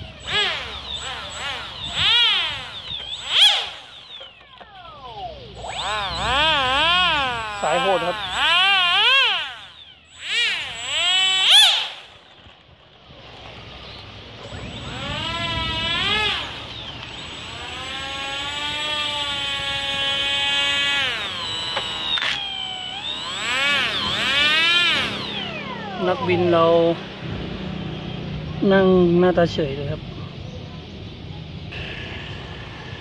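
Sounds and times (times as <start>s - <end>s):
electronic warbling tones: 0.0s - 11.8s.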